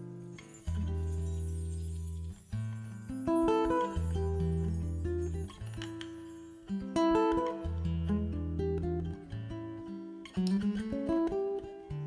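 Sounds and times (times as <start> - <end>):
nylon-string guitar fingerpicking: 0.0 - 12.0.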